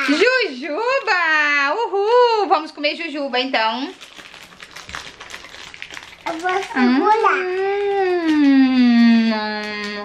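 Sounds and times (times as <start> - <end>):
plastic bag crinkling: 3.4 - 10.0.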